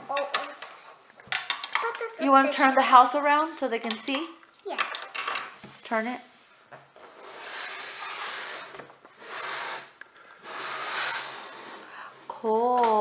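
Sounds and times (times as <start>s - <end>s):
plastic toy scraping across table: 5.2s - 13.0s.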